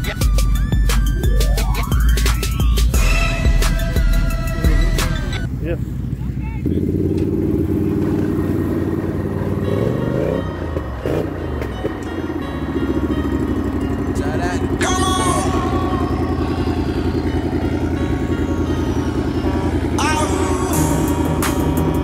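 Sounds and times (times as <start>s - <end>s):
music playing: 0.0s - 5.5s, 8.5s - 22.0s
atv engines revving: 0.0s - 22.0s.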